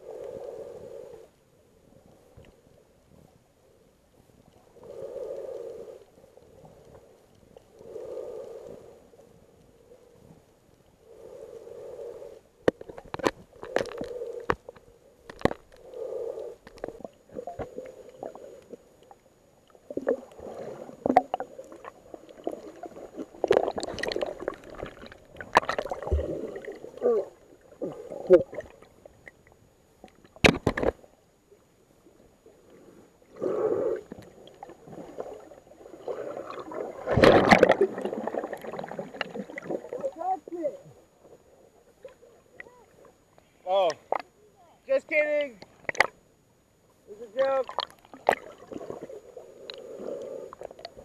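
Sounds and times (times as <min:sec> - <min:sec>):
underwater swishing and bubbling: 0:00.0 - 0:44.4, 0:45.5 - 0:51.0
water sloshing and gurgling: 0:11.0 - 0:31.2, 0:32.1 - 0:44.4, 0:45.6 - 0:46.3, 0:47.3 - 0:51.0
rush of bubbles: 0:19.9 - 0:27.0, 0:34.9 - 0:40.0.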